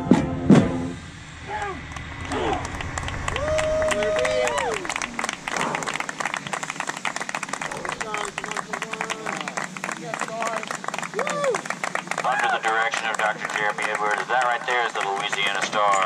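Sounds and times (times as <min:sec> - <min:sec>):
people shouting and cheering: 0:01.4 - 0:16.0
group clapping: 0:01.6 - 0:16.0.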